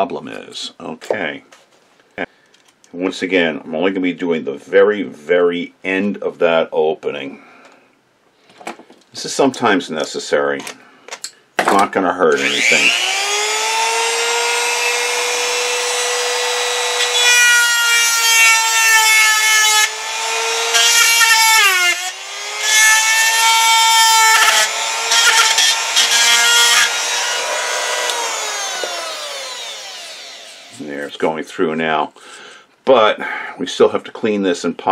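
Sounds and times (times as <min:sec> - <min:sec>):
rotary tool whining: 0:12.4 - 0:30.9.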